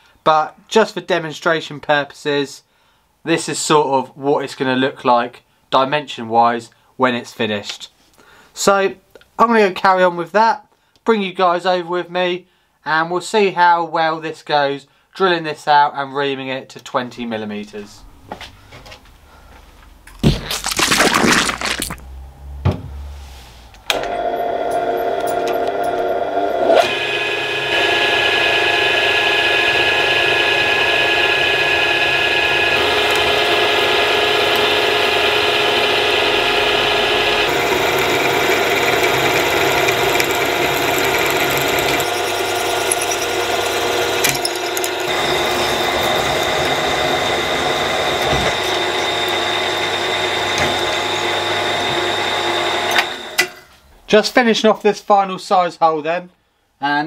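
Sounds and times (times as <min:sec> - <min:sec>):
milling machine drilling metal: 0:23.9 - 0:53.5.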